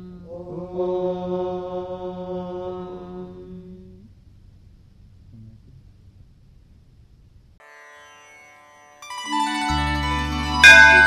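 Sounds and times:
faint low hum: 0.0 - 7.6
plucked string note: 10.6 - 11.0.

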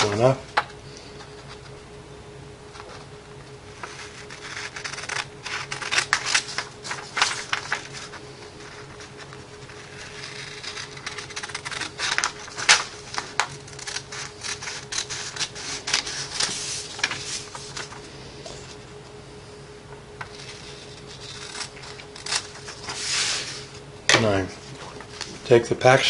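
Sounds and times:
scissors cutting paper: 3.8 - 18.0, 20.2 - 23.6.

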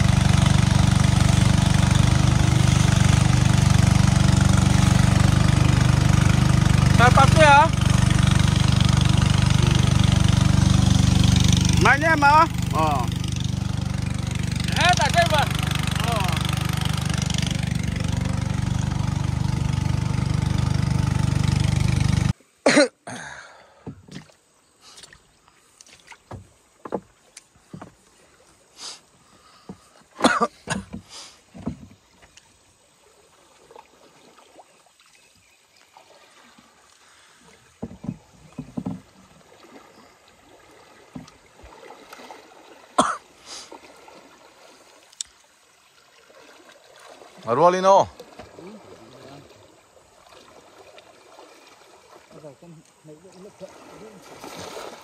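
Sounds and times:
river water splashing: 0.0 - 55.0.

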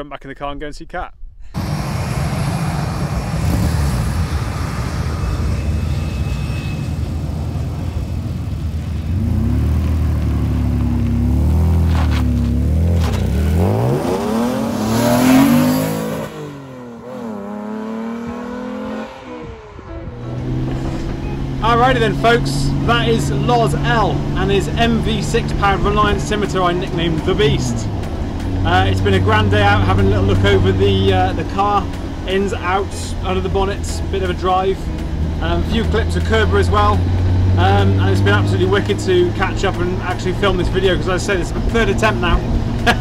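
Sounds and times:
car engine revving through exhaust: 1.6 - 6.0, 8.0 - 43.0.

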